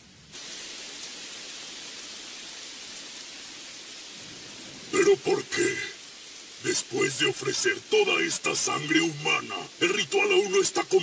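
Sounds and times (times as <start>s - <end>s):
steady rain falling: 0.0s - 11.0s
person speaking: 4.9s - 6.0s, 6.6s - 11.0s.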